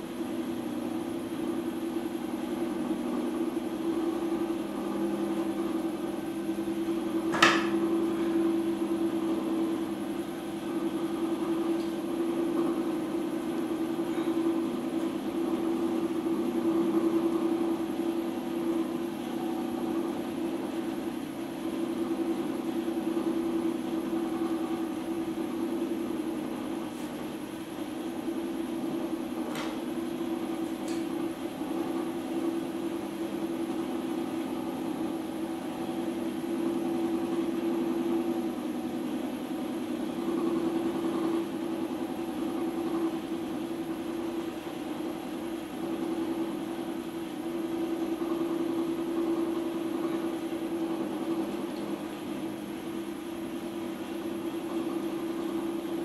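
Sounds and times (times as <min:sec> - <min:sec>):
potter's wheel motor hum: 0:00.0 - 0:56.0.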